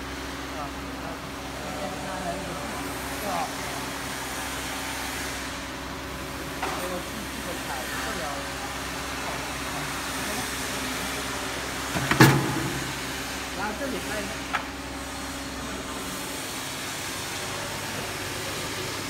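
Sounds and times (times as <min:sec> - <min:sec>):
pump motor hum: 0:00.0 - 0:19.0.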